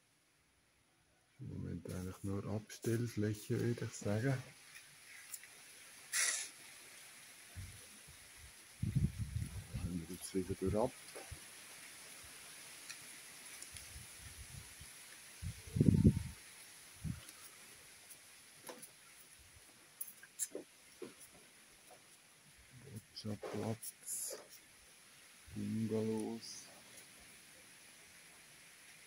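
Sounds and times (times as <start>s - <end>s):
faint high hiss: 0.0s - 29.0s.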